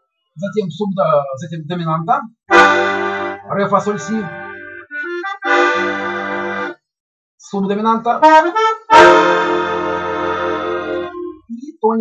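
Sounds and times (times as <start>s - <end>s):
button accordion chord: 2.5s - 6.8s, 8.1s - 11.4s.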